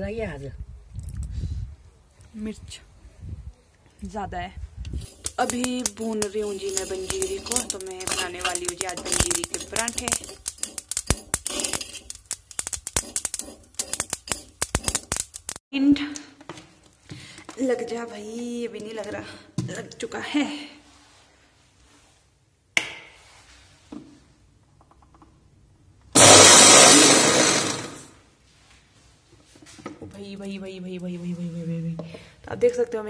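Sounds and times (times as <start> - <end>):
steel spoon scraping and tapping: 5.0 - 15.3
seeds crackling in a pan: 5.0 - 15.6, 26.2 - 28.1
mixer grinder motor running: 26.2 - 28.1.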